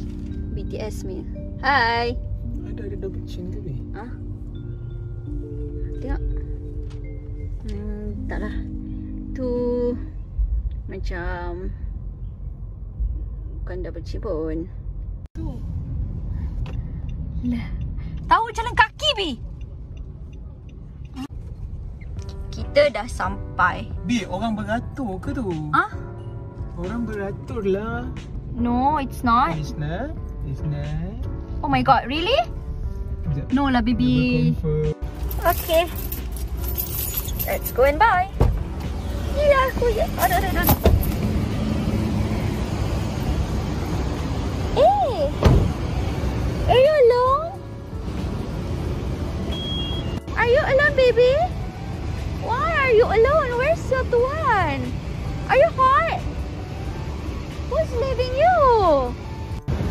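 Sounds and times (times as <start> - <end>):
car cabin road and engine rumble: 0.0 - 59.9
street traffic: 0.0 - 59.9
car engine running: 32.1 - 59.9.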